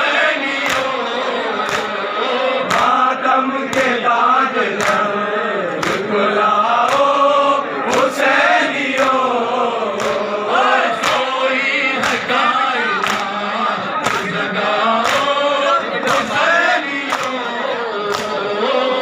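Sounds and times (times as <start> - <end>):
men chanting in unison: 0.0 - 19.0
chest-beating slaps: 1.6 - 2.0, 4.8 - 5.1, 5.8 - 6.1, 10.0 - 10.3.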